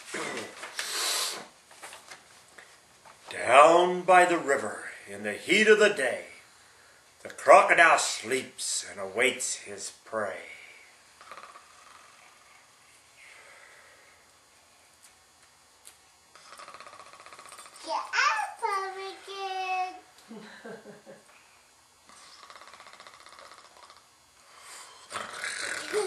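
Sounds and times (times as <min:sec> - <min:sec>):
laughter and voices: 0:20.3 - 0:21.2.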